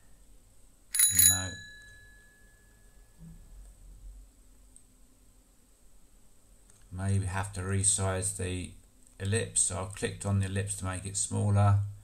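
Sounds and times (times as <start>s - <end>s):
bell ding: 0.9s - 3.2s.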